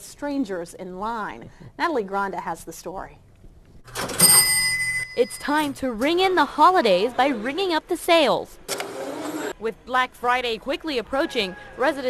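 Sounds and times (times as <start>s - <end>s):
cash register clatter: 3.9s - 4.8s
cash register bell ringing: 3.9s - 6.0s.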